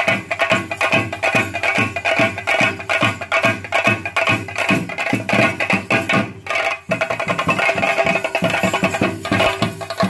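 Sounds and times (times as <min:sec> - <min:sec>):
drums beaten fast: 0:00.0 - 0:10.0.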